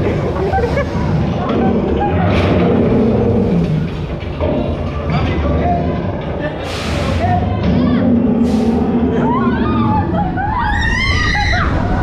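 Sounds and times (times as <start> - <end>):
indistinct voices: 0.0 - 12.0
steady low rumble: 0.0 - 12.0.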